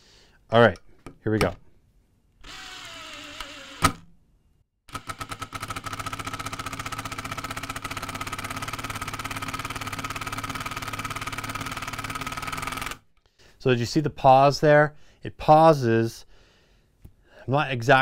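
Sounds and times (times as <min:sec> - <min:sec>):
impact driver motor whine: 0:02.4 - 0:04.0, 0:04.9 - 0:13.0
impact driver hammering rattle: 0:04.9 - 0:13.0.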